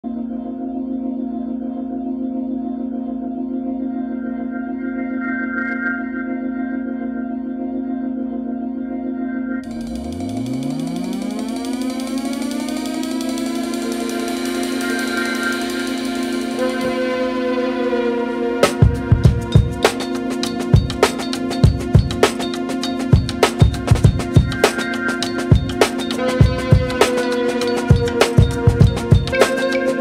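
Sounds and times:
background music: 0.0 - 30.0
sustained organ-like chord: 0.0 - 30.0
rising synth sweep: 9.0 - 30.0.

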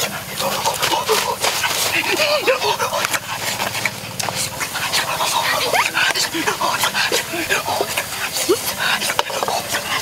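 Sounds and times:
boys exclaiming: 1.9 - 3.0, 5.3 - 8.8.

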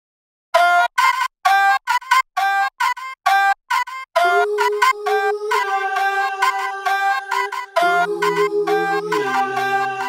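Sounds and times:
staccato synth arpeggio: 4.2 - 10.0.

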